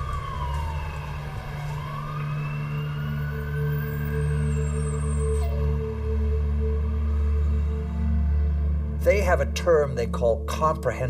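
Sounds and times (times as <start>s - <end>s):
emergency vehicle siren wailing: 0.0s - 9.0s.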